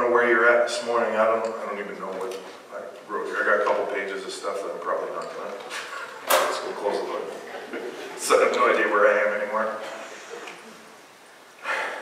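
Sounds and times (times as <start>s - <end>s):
man's sharp breath: 11.6s - 12.0s.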